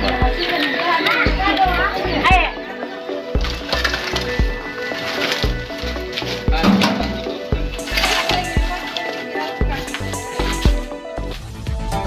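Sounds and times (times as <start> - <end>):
music with bass beat: 0.0 - 0.6, 1.2 - 12.0
voices: 0.0 - 11.3.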